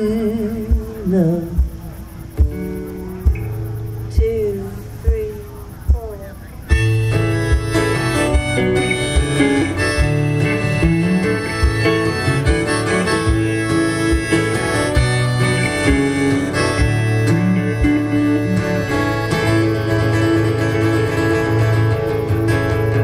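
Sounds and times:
acoustic guitar: 0.0 - 23.0
electric guitar: 0.0 - 23.0.

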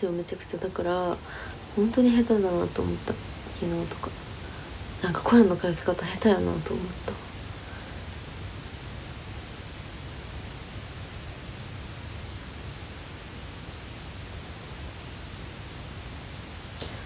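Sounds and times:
steady microphone hiss: 0.0 - 17.0.

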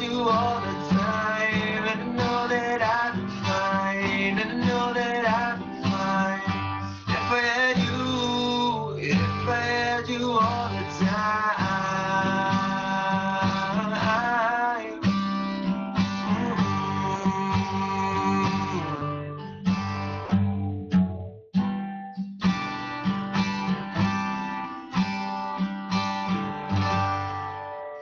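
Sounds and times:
acoustic guitar strumming: 0.0 - 28.0
man singing held note: 16.2 - 19.1.

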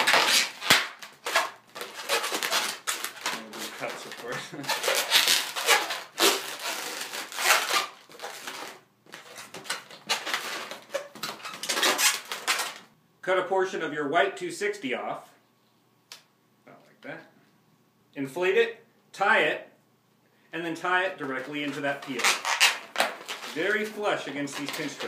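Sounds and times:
balloons squeaking and rubbing: 0.0 - 12.9, 21.2 - 25.0.

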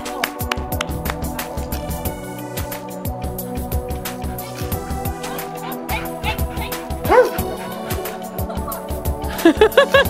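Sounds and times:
background music with steady beat: 0.0 - 10.0
dog barking: 5.4 - 8.2.

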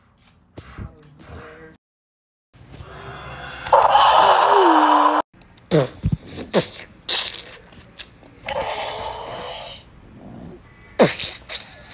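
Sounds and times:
growling dinosaur roar: 2.8 - 5.2.

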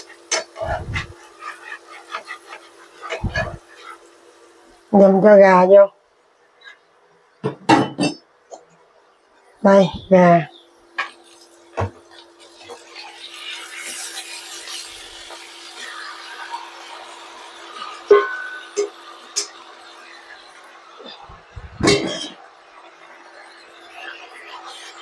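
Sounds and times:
chicken sizzling in hot oil: 0.0 - 5.8, 9.1 - 25.0
steady hum: 0.3 - 1.4.

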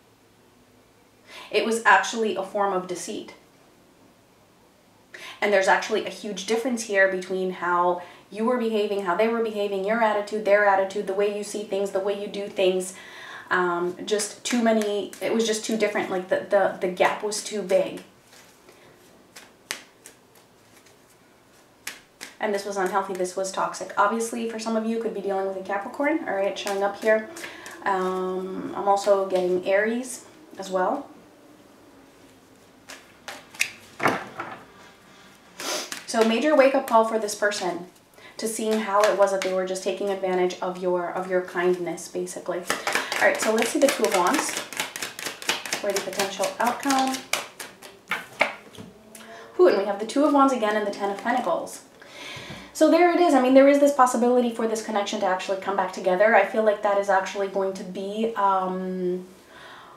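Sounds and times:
cards clicking in hand: 32.9 - 33.9, 42.7 - 48.6
sharp card clicks: 32.9 - 33.9.

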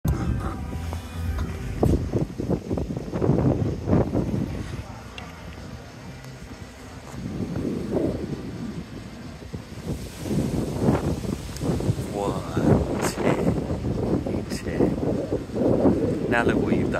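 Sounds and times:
music: 0.0 - 3.0.

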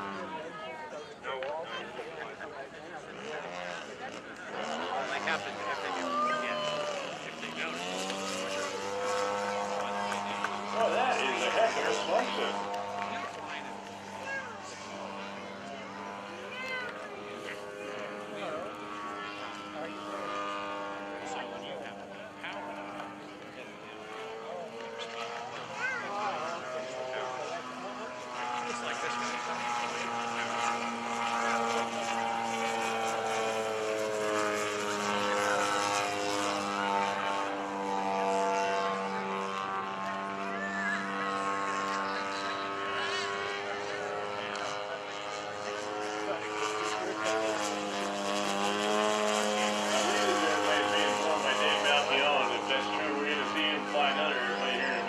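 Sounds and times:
model airplane engine and propeller: 0.0 - 55.0.

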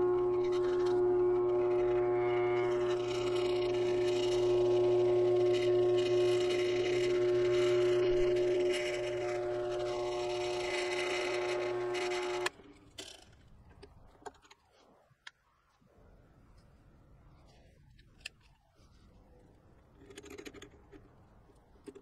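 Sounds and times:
drill press motor hum: 0.0 - 12.5
drilling through metal tube: 0.0 - 12.5.

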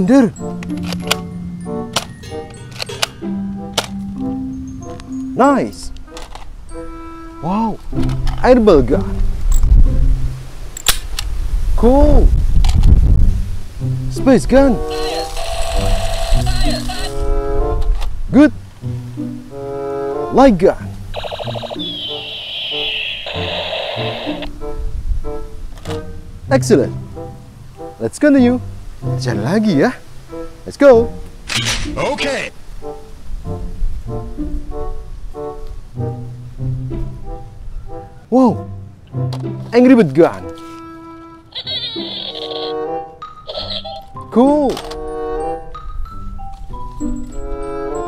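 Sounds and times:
background music: 0.0 - 10.9, 13.6 - 48.0
toy gun electronic sound effects: 14.9 - 17.0, 21.1 - 24.5, 41.6 - 42.8, 43.5 - 44.1.

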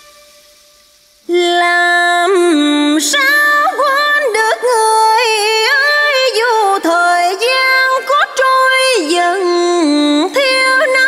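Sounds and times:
woman singing sliding notes: 1.2 - 11.0.

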